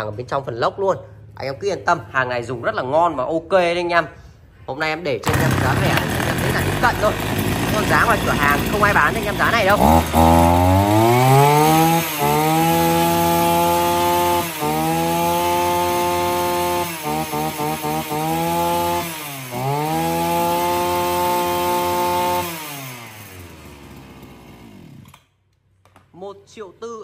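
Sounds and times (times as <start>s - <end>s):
brush cutter engine revving: 5.2s - 25.2s.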